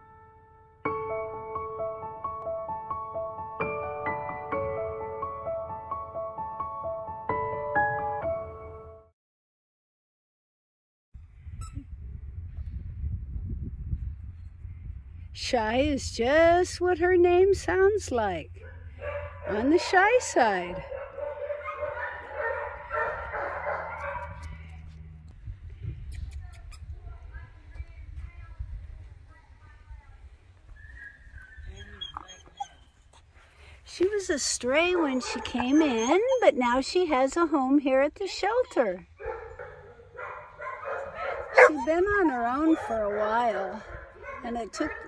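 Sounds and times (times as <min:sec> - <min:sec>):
wind buffeting microphone: 0:11.2 - 0:21.4, 0:22.7 - 0:32.1, 0:40.9 - 0:45.0
dog whimpering: 0:31.6 - 0:33.0, 0:35.2 - 0:36.7, 0:41.5 - 0:43.3.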